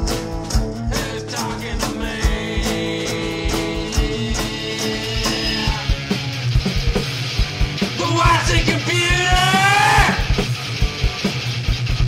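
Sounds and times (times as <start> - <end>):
fast kick drum beat: 0.0 - 12.0
instrumental rock music: 0.0 - 12.0.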